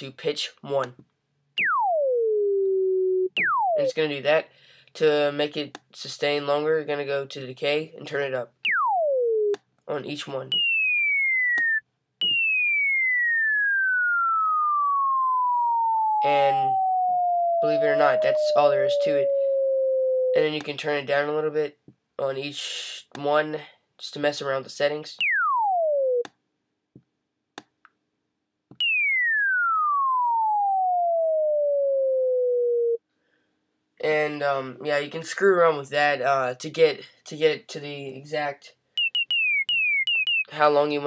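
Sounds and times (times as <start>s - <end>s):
synth tone gliding downward: 1.6s - 4.0s, 8.7s - 9.6s, 11.5s - 20.6s, 25.2s - 26.3s, 28.8s - 33.0s.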